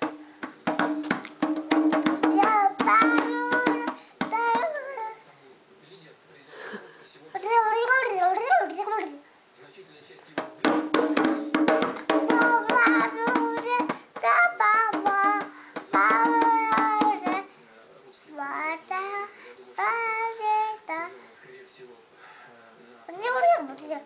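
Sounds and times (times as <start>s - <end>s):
hand drum beaten with palms: 0.0s - 4.7s, 10.4s - 17.5s
child singing: 2.0s - 5.2s, 7.4s - 9.2s, 12.1s - 17.5s, 18.3s - 21.1s, 23.1s - 24.0s.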